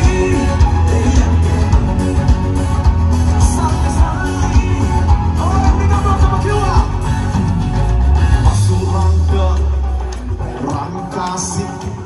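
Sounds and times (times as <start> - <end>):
live band through loudspeakers: 0.0 - 12.0.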